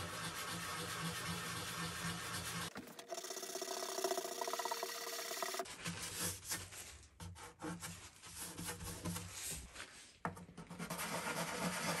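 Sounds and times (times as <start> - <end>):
sanding block rubbing on wood: 0.0 - 2.7, 10.9 - 12.0.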